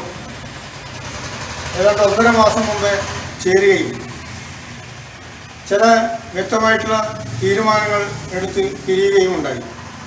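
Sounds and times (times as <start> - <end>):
street traffic: 0.0 - 10.0
vehicle engine humming: 0.0 - 10.0
man speaking: 1.8 - 4.2, 5.6 - 9.8.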